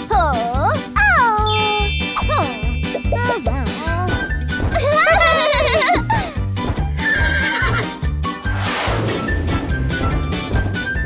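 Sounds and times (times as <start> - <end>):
children's music with steady beat: 0.0 - 8.4
cartoon horse whinny: 7.0 - 7.9.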